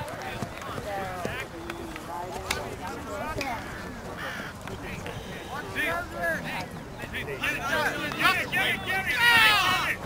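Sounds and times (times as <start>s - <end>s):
distant people shouting: 7.4s - 10.0s.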